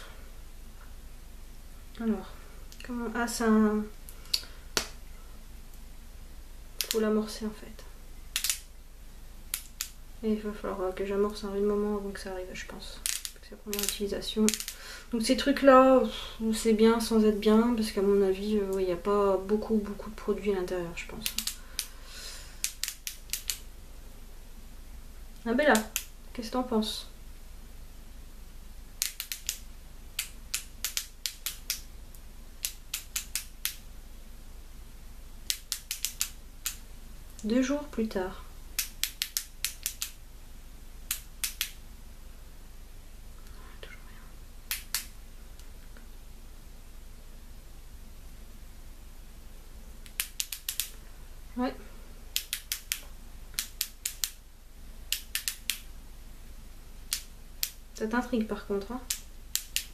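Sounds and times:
plastic pen clicks: 0:08.3 - 0:08.7, 0:09.5 - 0:10.0, 0:13.0 - 0:14.8, 0:21.2 - 0:21.9, 0:22.6 - 0:23.6, 0:29.0 - 0:29.6, 0:30.2 - 0:31.8, 0:32.6 - 0:33.8, 0:35.5 - 0:36.8, 0:38.8 - 0:40.2, 0:41.1 - 0:41.8, 0:50.0 - 0:51.0, 0:52.4 - 0:53.0, 0:53.6 - 0:54.4, 0:55.1 - 0:55.8, 0:59.1 - 0:59.9
pen click mechanism clicking: 0:08.4 - 0:08.6.

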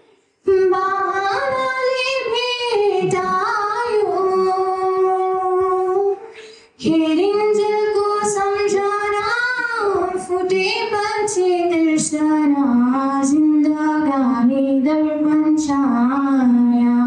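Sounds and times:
woman singing into microphone: 0:00.4 - 0:17.0.

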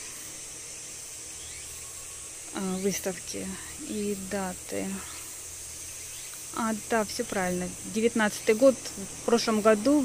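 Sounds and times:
insect chorus hissing: 0:00.0 - 0:10.0.

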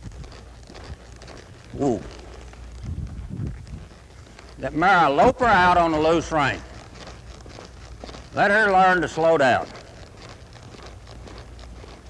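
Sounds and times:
horse hoofbeats on soft dirt: 0:00.0 - 0:12.0.

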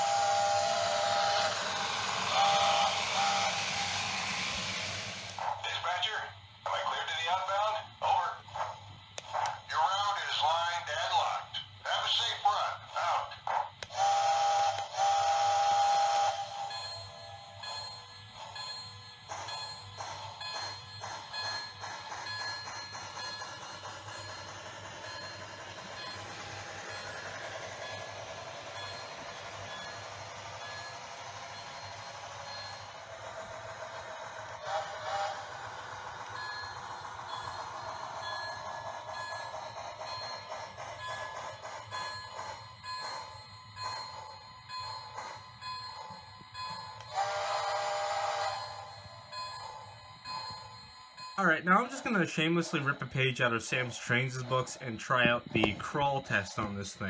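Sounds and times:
model train running on track: 0:00.0 - 0:57.0.

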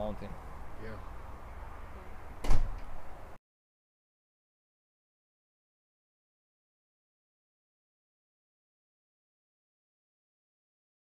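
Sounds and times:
loud thump: 0:02.4 - 0:03.0.

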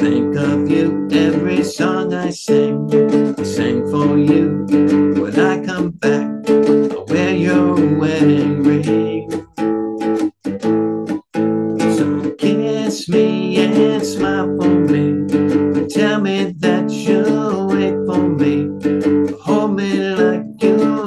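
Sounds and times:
guitar strummed in chords: 0:00.0 - 0:21.0.

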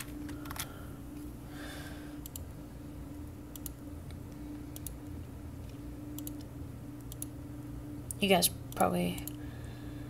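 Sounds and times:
low steady hum: 0:00.0 - 0:10.0
computer keys clicking: 0:02.2 - 0:02.5, 0:03.5 - 0:05.1, 0:05.7 - 0:07.4, 0:08.0 - 0:09.4.

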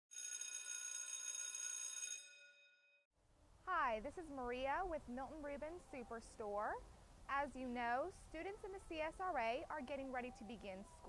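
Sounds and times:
bell-like chime: 0:00.1 - 0:03.1
woman speaking: 0:03.7 - 0:11.0.

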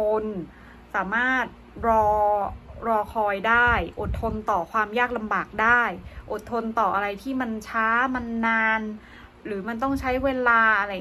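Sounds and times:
woman narrating: 0:00.0 - 0:11.0.

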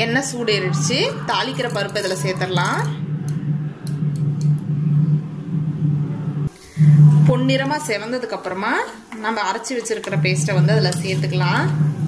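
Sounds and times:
steady low hum: 0:00.0 - 0:09.1, 0:09.9 - 0:12.0.

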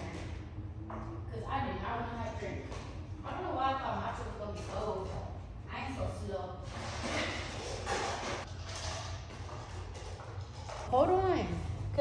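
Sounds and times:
low hum: 0:00.0 - 0:07.1.

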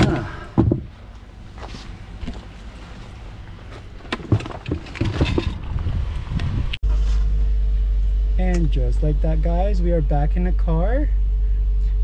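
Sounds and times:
hiking gear knocks and clicks: 0:03.7 - 0:05.7.

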